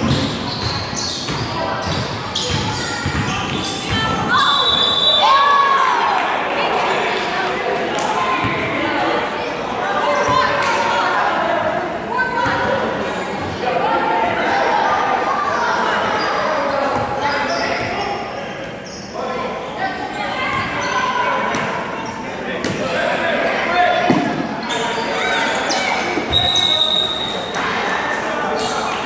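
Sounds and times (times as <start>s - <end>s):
kids' voices and shouts echoing: 0.0s - 29.0s
high squeak: 24.6s - 27.4s.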